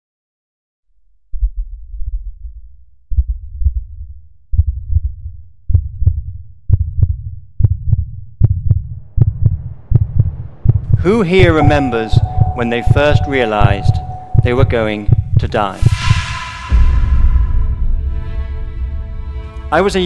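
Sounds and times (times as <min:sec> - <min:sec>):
deep heartbeat-like thudding: 0:01.2 - 0:19.4.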